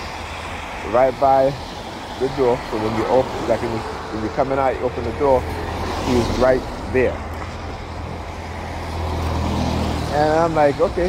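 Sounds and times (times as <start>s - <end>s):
traffic on wet road: 0.0s - 11.0s.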